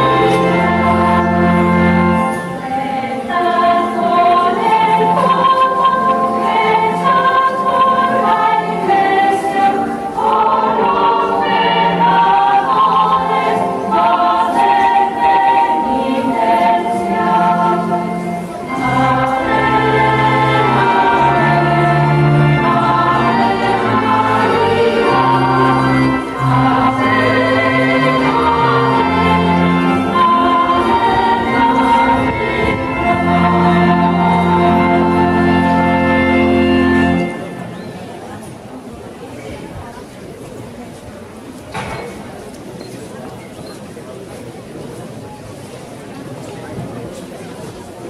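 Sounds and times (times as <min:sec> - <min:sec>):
choir singing a hymn: 0:00.0 - 0:37.6.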